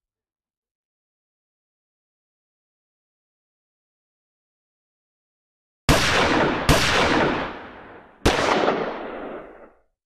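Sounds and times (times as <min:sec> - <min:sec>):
gunshots with echoing tail: 0:05.9 - 0:09.8.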